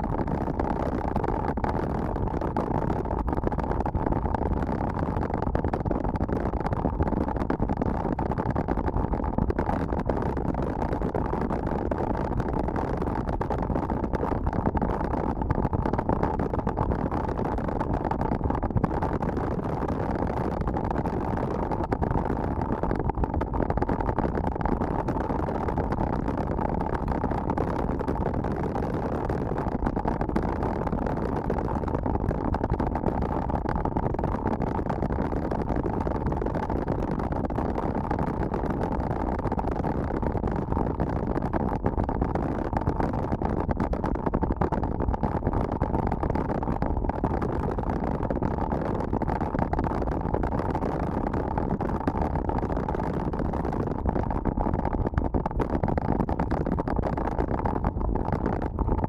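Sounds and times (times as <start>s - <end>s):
wind rumble on microphone: 0.0s - 59.0s.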